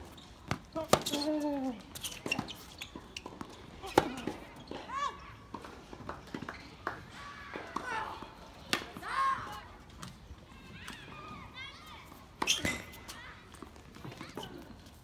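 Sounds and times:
tennis balls struck and bouncing: 0:00.4 - 0:11.4.

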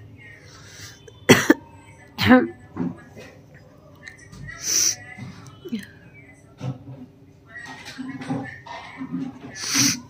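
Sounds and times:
woman coughing: 0:01.3 - 0:02.5.

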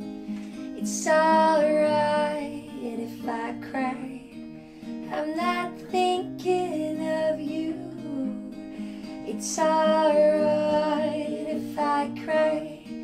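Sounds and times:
acoustic guitar strumming: 0:00.0 - 0:13.0
woman singing: 0:00.6 - 0:13.0.

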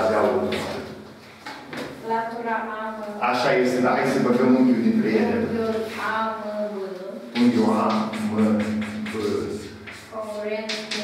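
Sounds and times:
man's voice: 0:00.0 - 0:00.9, 0:03.2 - 0:05.6, 0:07.4 - 0:09.7
chalk scratching on blackboard: 0:07.9 - 0:11.0.

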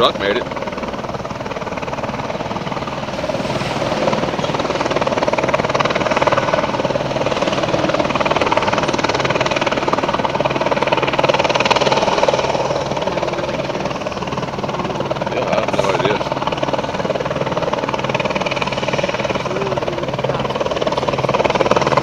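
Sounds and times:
helicopter engine hum: 0:00.0 - 0:22.0
helicopter rotor chopping: 0:00.0 - 0:22.0.

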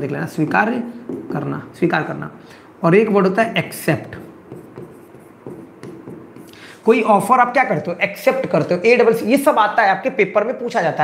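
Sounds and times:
stylus tapping on screen: 0:00.6 - 0:01.5, 0:04.0 - 0:06.6
stylus scratching on screen: 0:03.9 - 0:07.3.

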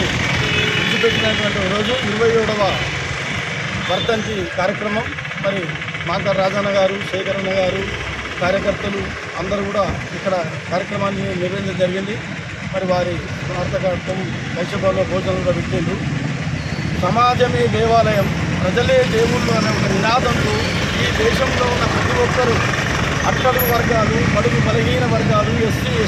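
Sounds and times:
street traffic rumble: 0:00.0 - 0:26.0
man speaking: 0:00.8 - 0:03.0, 0:03.8 - 0:16.1, 0:17.0 - 0:26.0.

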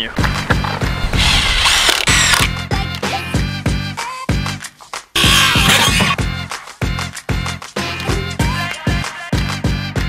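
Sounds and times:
power drill whirring: 0:01.0 - 0:02.6
background music with steady beat: 0:02.1 - 0:10.0.

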